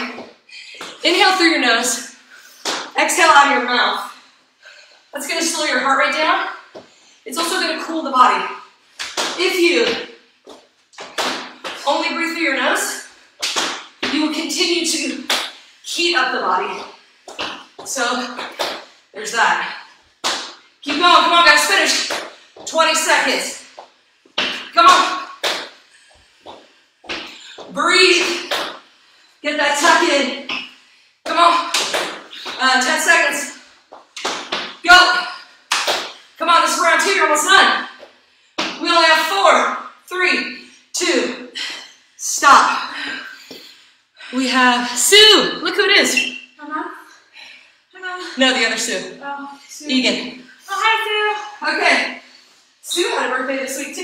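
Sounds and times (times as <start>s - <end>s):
woman talking: 1.0s - 2.2s, 7.3s - 8.7s, 9.4s - 10.2s, 11.8s - 13.1s, 14.0s - 15.3s, 15.9s - 17.0s, 17.8s - 18.6s, 19.2s - 19.9s, 20.8s - 23.7s, 31.3s - 31.8s, 32.5s - 33.6s, 48.0s - 52.2s, 52.8s - 54.0s.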